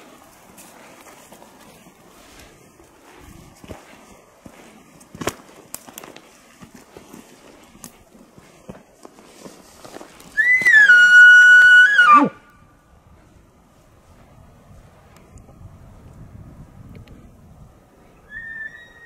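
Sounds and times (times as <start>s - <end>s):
footsteps on forest floor: 0.0s - 11.8s
twigs snapping: 5.0s - 6.9s
elk bugling: 10.4s - 12.4s.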